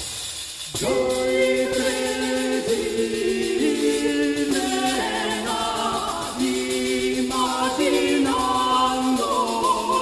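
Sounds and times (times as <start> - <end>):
vocal ensemble singing polyphony: 0.8 - 10.0.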